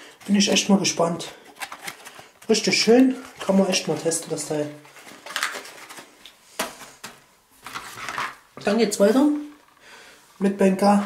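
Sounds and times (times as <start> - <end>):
cardboard packets rustling: 0.0 - 9.7.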